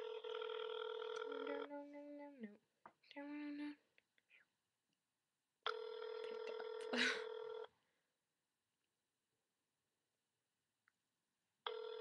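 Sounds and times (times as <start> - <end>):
telephone ringback tone: 0.0 - 1.7, 5.7 - 7.7, 11.7 - 12.0.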